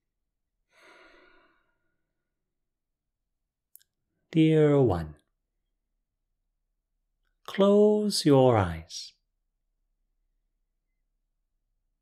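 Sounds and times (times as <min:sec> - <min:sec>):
man breathing out deeply: 0:00.7 - 0:02.0.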